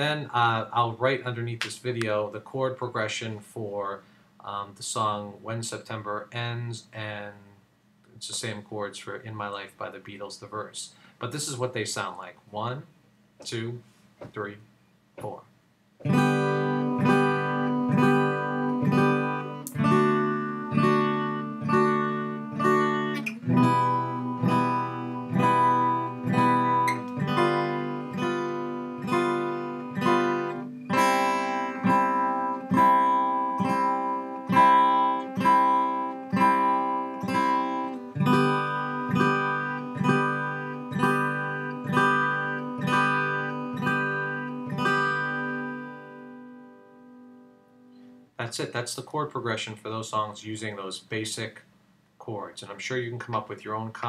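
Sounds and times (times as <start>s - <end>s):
acoustic guitar strumming: 16.0s - 48.3s.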